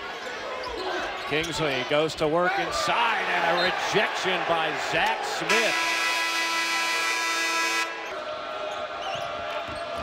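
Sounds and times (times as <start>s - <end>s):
basketball play on court: 0.0s - 10.0s
crowd noise: 0.0s - 10.0s
held multi-pitch horn tone: 5.5s - 8.1s.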